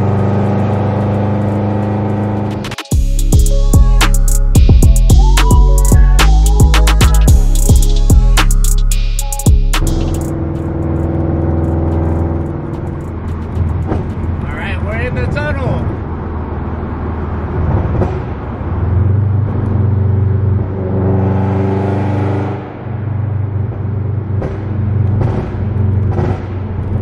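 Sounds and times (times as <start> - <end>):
car engine drone from inside cabin: 0.0 - 21.0.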